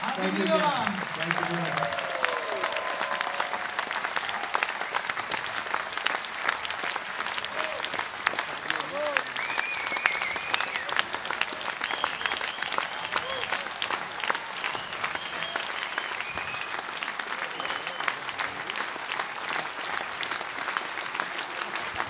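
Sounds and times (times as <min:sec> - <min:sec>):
high-pitched cheers: 0:00.0 - 0:05.5
audience applauding: 0:00.0 - 0:22.0.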